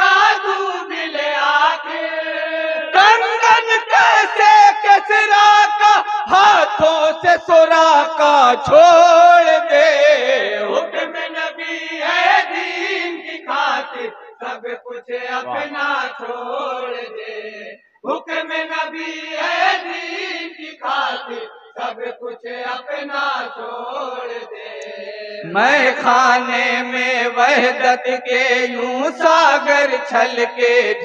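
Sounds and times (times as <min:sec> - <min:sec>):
men chanting into microphone: 0:00.0 - 0:31.0.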